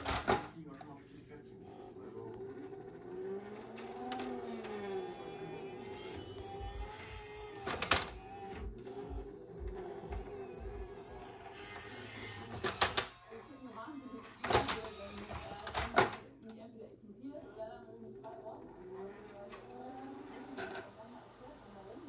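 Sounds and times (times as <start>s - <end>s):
motor whine: 1.5s - 15.9s
steady hum with low pulsing: 8.1s - 11.3s.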